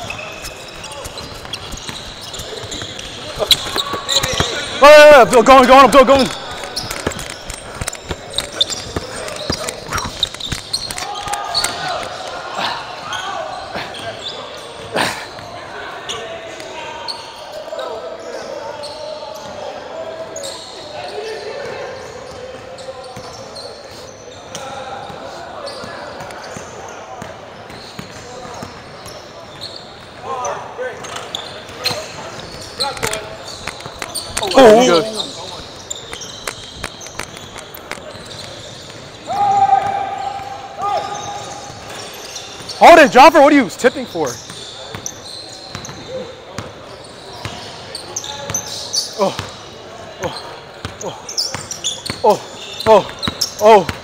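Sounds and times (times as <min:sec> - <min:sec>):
players' voices: 0:00.0 - 0:54.0.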